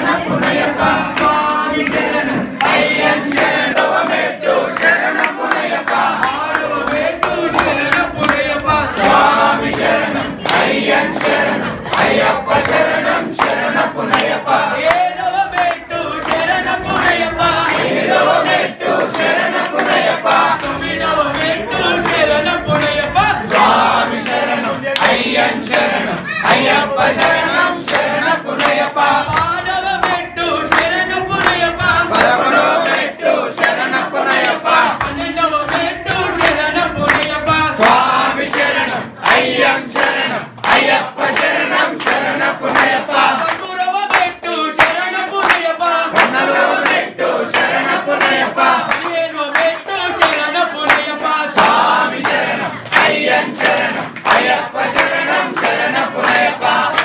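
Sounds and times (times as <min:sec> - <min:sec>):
group singing a devotional song: 0:00.0 - 0:57.0
hands clapping along: 0:00.0 - 0:57.0.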